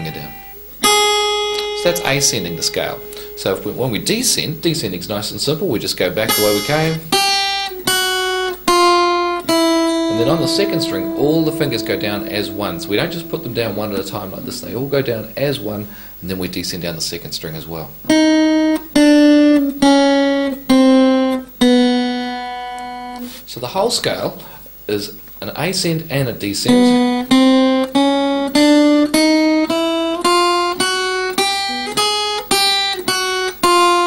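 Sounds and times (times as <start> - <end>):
acoustic guitar picked notes: 0.0 - 16.8, 18.0 - 23.5, 26.1 - 34.0.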